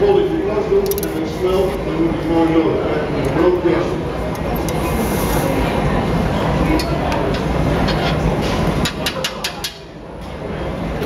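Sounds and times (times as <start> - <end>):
metal tools clicking on blowpipe: 0.9 - 1.1.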